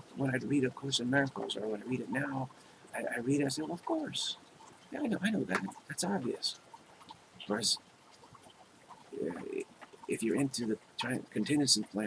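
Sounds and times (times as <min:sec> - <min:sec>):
man humming hesitantly: 0:00.2 - 0:02.4, 0:03.0 - 0:04.3, 0:05.0 - 0:06.5, 0:07.5 - 0:07.8, 0:09.2 - 0:12.0.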